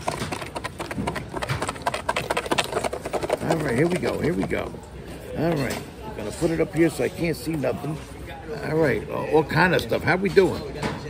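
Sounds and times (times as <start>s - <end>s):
paper tickets shaken in a box: 0.0s - 4.6s.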